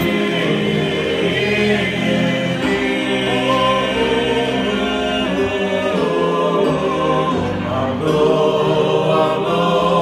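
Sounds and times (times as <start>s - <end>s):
men singing a cappella: 0.0s - 10.0s.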